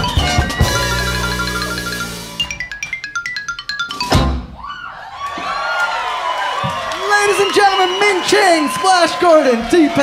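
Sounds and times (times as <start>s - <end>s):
audience cheering and whooping: 4.5s - 10.0s.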